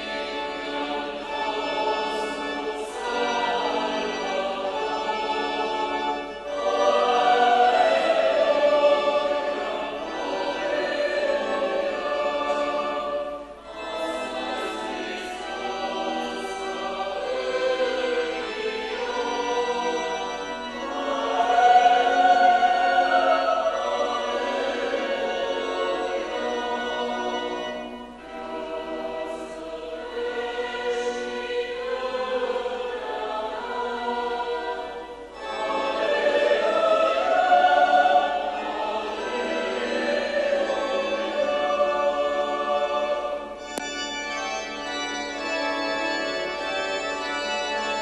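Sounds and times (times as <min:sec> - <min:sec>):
church choir singing a hymn: 0:00.0 - 0:48.0.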